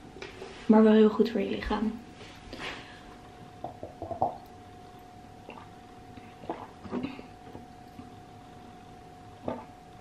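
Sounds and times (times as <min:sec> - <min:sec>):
faint hum: 0:00.0 - 0:10.0
swallowing: 0:05.4 - 0:07.4, 0:09.4 - 0:09.7.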